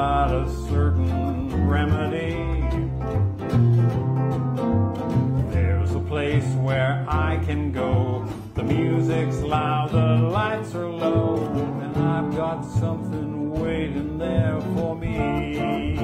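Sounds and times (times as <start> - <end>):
strummed acoustic guitar: 0.0 - 16.0
upright bass walking line: 0.0 - 16.0.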